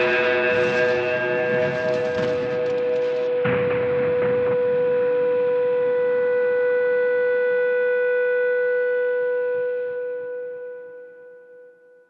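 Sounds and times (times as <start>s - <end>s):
sustained electro-pop note: 0.0s - 5.3s
noisy crash: 0.0s - 5.4s.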